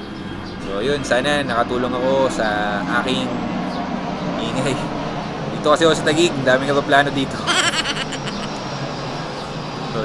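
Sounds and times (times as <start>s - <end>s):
airplane engine overhead: 0.0s - 10.0s
people talking: 7.4s - 8.6s.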